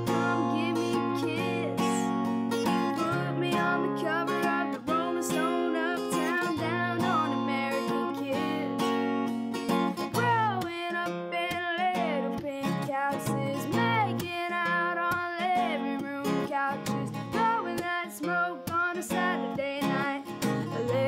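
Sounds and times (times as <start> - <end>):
boy singing: 0.0 - 2.1, 2.9 - 8.9, 10.1 - 21.0
strummed acoustic guitar: 0.0 - 21.0.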